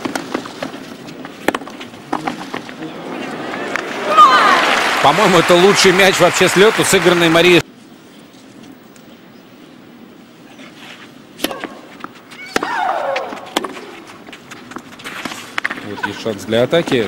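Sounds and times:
player shrieking: 0:04.0 - 0:04.8, 0:12.4 - 0:13.5
racket hitting tennis ball: 0:11.4 - 0:15.8.

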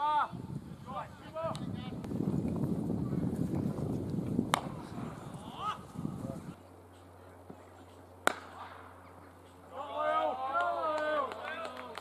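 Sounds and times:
bat striking cricket ball: 0:04.5 - 0:04.9, 0:08.2 - 0:08.9.

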